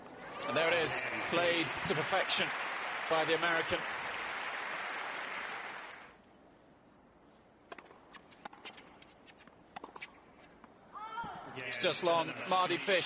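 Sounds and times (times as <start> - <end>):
crowd applause: 0.5 - 6.1
tennis ball bouncing: 7.7 - 10.8.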